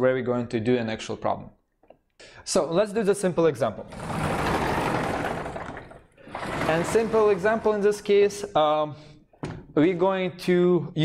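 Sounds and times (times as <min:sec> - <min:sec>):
chalkboard panel rolling rumble: 0:03.9 - 0:08.1.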